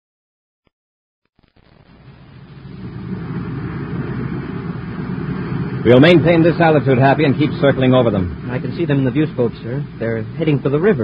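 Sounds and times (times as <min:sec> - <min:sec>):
rocket engine rumbling drone: 0:01.5 - 0:11.0.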